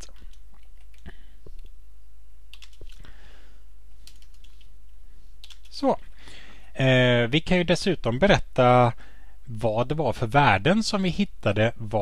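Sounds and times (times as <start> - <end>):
steady low hum: 0.0 - 12.0
computer keyboard keystrokes: 2.5 - 3.0, 4.0 - 4.6, 5.4 - 5.7.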